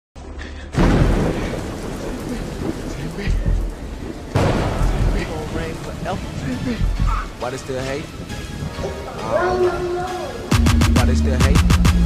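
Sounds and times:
steady rain: 0:00.2 - 0:10.6
rolling thunder rumble: 0:00.7 - 0:08.8
loud thunderclap: 0:00.8 - 0:07.4.

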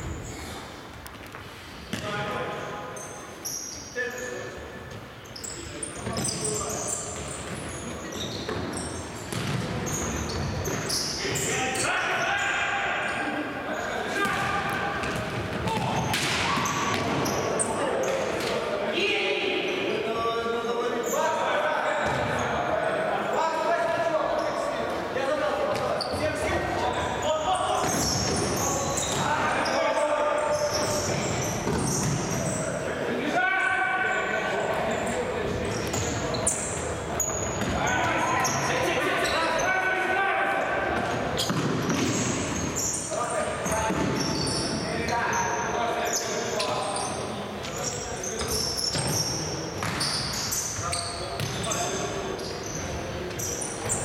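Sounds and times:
ball kicked and bouncing: 0:09.3 - 0:09.7.

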